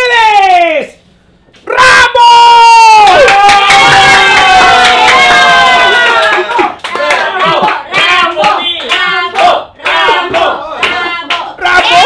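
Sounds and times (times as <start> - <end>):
hand claps: 6.1 - 11.5.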